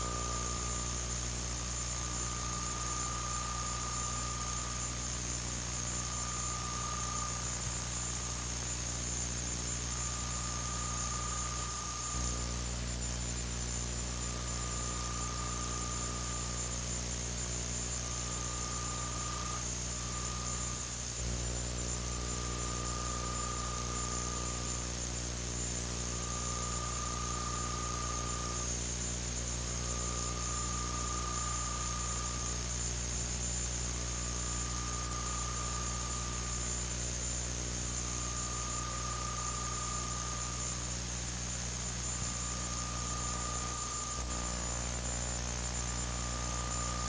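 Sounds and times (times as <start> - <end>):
electrical hum and tape hiss: 0.0 - 47.0
thin high whine: 0.0 - 47.0.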